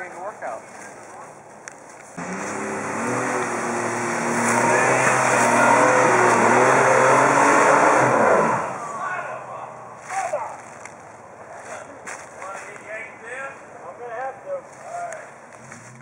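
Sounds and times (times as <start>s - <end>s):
car engine revving under load: 2.2s - 9.9s.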